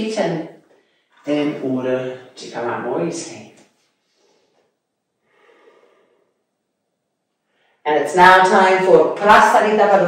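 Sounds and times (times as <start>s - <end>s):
faint breaths: 3.8s - 6.5s.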